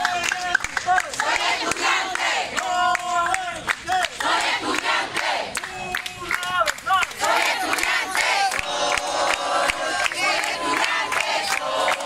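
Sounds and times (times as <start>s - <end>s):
hand claps: 0.0s - 12.0s
crowd shouting: 0.9s - 12.0s.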